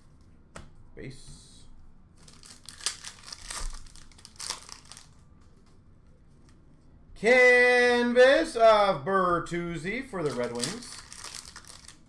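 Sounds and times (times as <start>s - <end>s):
foil wrapper crinkling: 2.2s - 5.2s, 10.2s - 12.0s.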